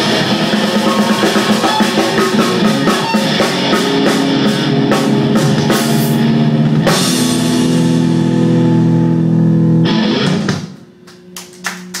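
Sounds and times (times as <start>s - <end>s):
rock band chord ringing: 0.0s - 11.0s
low amplifier hum: 0.0s - 12.0s.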